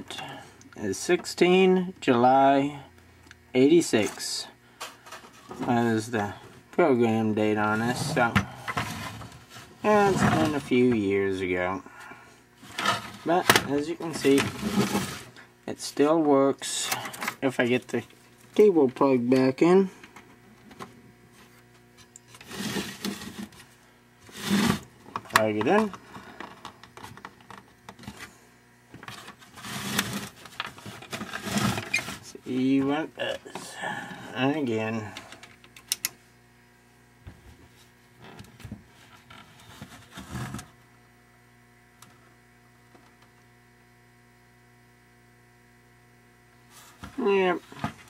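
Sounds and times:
faint electrical hum: 0.0s - 48.0s.

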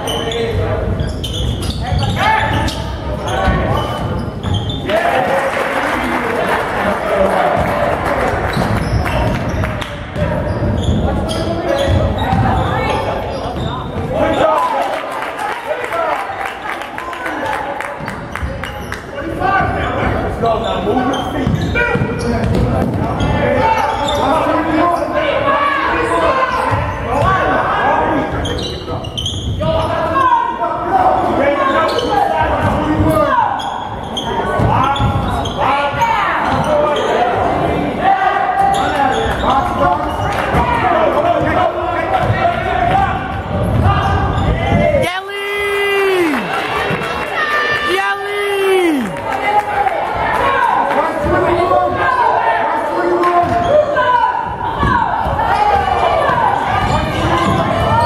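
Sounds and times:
spectators talking: 0.0s - 58.0s.

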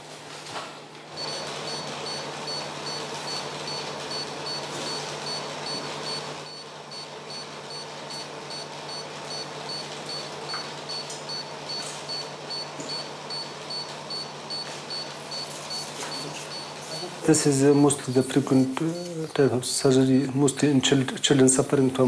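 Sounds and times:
air-conditioner hum: 0.0s - 22.0s
high-pitched monitor beeping: 1.2s - 19.4s.

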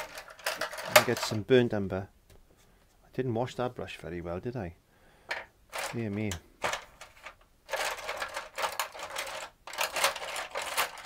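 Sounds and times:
paintbrushes rattling and clicking: 0.0s - 1.4s, 5.7s - 11.0s.

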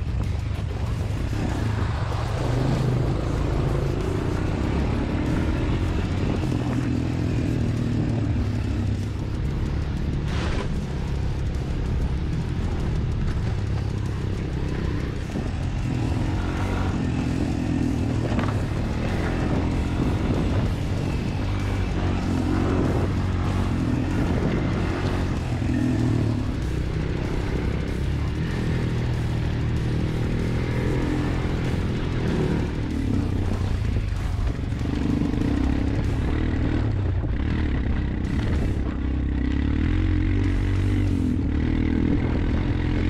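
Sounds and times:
music: 0.0s - 43.0s
quad bike engine running: 0.0s - 43.0s.

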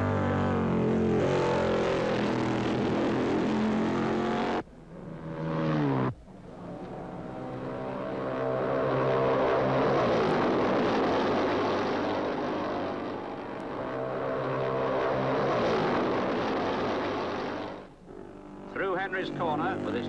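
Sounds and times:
racing motorcycle engine: 0.0s - 20.0s.

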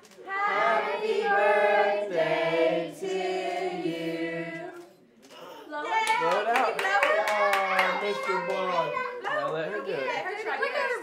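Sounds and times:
hand clapping: 6.0s - 9.6s
women and child cheering: 7.1s - 9.3s.

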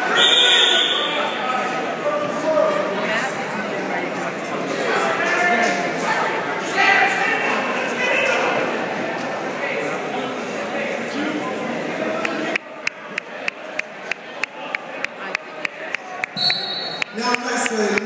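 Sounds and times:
spectators chattering: 0.0s - 18.0s.

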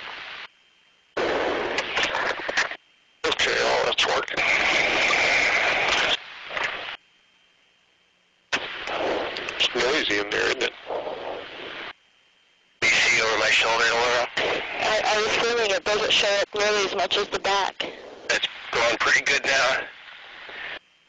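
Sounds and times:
crackling intercom noise: 0.0s - 7.2s, 8.5s - 12.1s, 12.7s - 20.9s
muffled voices: 3.2s - 6.2s, 8.9s - 11.9s, 12.8s - 20.8s.

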